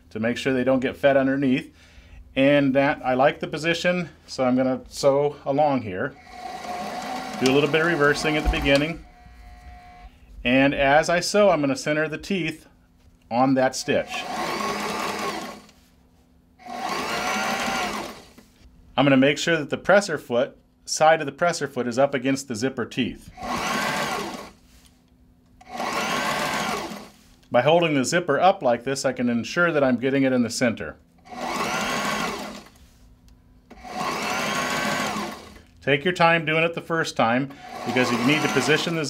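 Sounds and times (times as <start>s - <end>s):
sewing machine stitching: 6.2s - 10.0s, 13.8s - 15.8s, 16.6s - 18.4s, 23.4s - 24.6s, 25.6s - 27.2s, 31.3s - 32.8s, 33.7s - 35.6s, 37.6s - 39.0s.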